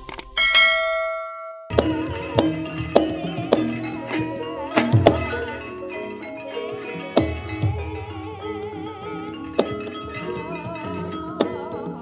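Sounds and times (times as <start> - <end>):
gamelan music with metallophone strikes: 0.3 - 12.0
bright bell-like chime: 0.4 - 11.7.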